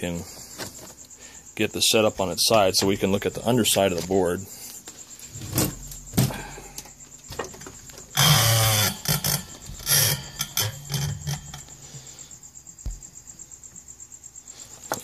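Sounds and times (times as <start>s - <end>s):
loud scrape on workbench: 8.1s - 12.2s
thump: 12.8s - 13.1s.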